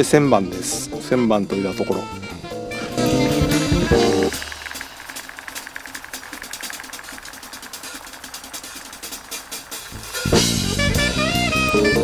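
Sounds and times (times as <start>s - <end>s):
background music: 0.0s - 5.0s, 7.8s - 12.0s.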